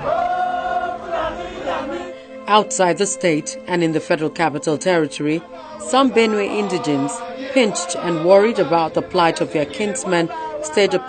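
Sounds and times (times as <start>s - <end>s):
group of voices singing: 0.0s - 11.0s.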